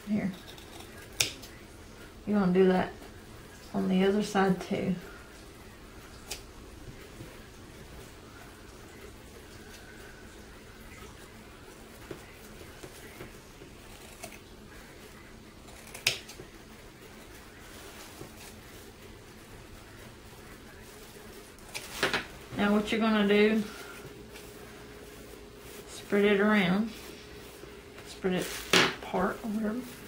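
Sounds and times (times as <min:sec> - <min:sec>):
low room hum: 0:00.0 - 0:30.0
scissors snipping: 0:15.7 - 0:16.4.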